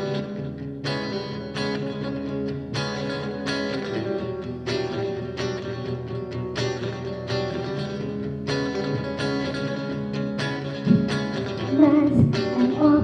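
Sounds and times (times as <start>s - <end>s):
guitar chords ringing: 0.0s - 13.0s
woman singing: 11.7s - 13.0s.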